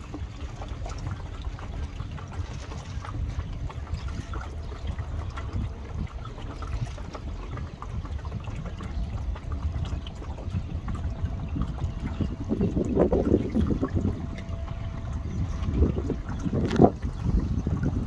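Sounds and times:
small waves lapping: 0:00.0 - 0:18.0
wind rumble on microphone: 0:00.0 - 0:18.0.

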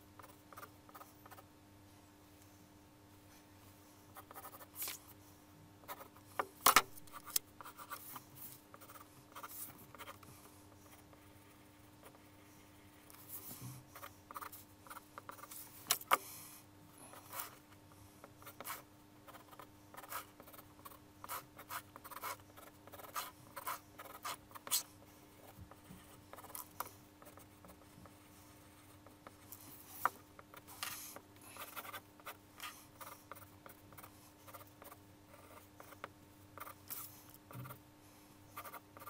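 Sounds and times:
pencil scratching on paper: 0:07.1 - 0:15.6, 0:18.2 - 0:37.8, 0:38.5 - 0:39.0.

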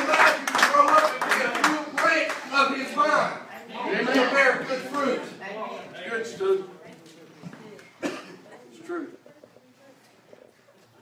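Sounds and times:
congregation clapping: 0:00.0 - 0:02.9.

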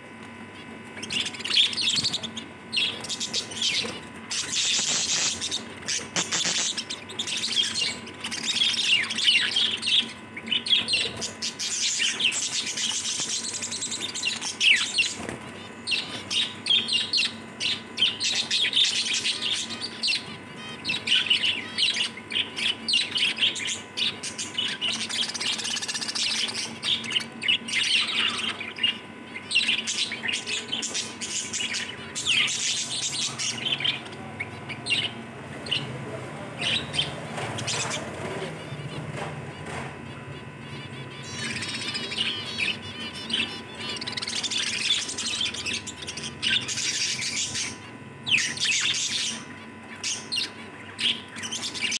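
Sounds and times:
small birds chirping: 0:00.0 - 0:51.9.

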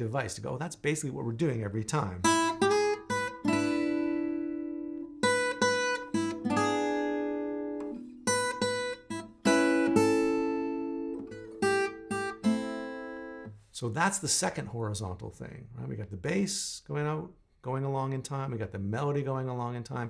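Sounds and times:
fingerpicked acoustic guitar blues: 0:01.8 - 0:13.6.

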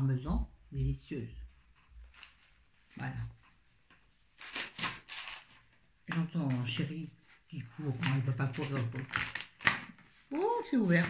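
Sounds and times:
person speaking: 0:00.0 - 0:01.9, 0:02.8 - 0:03.6, 0:06.0 - 0:09.3, 0:10.2 - 0:11.0
rustling packaging: 0:01.6 - 0:11.0.

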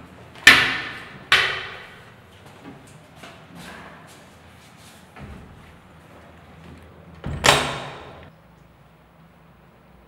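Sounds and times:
stall door banging shut: 0:07.2 - 0:08.3.

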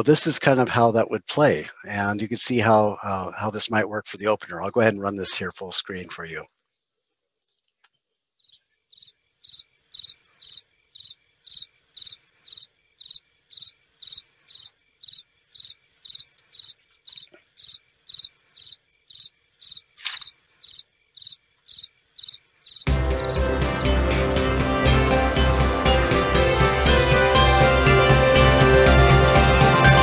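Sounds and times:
crickets chirping: 0:08.4 - 0:23.5
loud music: 0:22.9 - 0:30.0.

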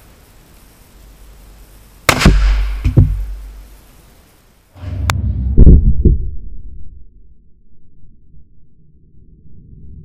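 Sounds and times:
gunshot crack: 0:02.1 - 0:03.6
deep muffled booms: 0:02.1 - 0:03.8, 0:04.8 - 0:07.3
small thud: 0:02.2 - 0:03.5.

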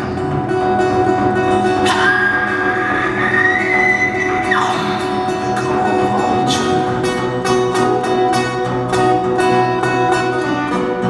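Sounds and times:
resonator guitar blues: 0:00.0 - 0:11.0.

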